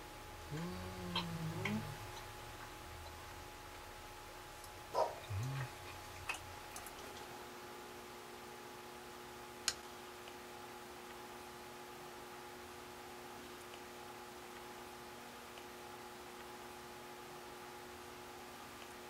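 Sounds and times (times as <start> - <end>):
person humming while eating: 0.4 - 2.5, 5.2 - 6.0.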